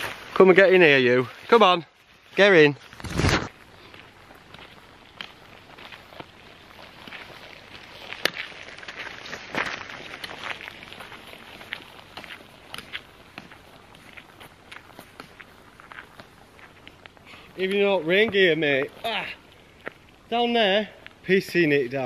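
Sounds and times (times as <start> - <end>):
footsteps on gravel: 0.0 - 22.0.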